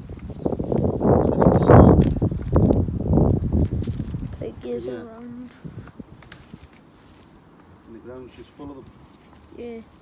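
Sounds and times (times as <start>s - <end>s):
soil and dry stalks rustling: 0.0s - 10.0s.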